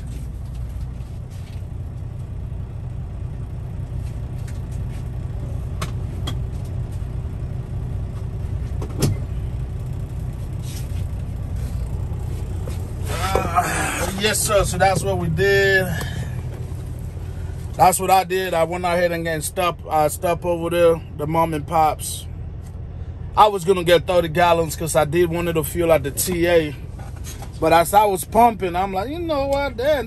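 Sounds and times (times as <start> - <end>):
truck diesel engine from cab: 0.0 - 30.0.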